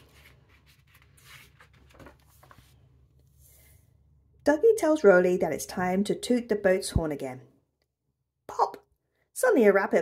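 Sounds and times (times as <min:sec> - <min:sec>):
paper page turning: 0:00.0 - 0:02.9.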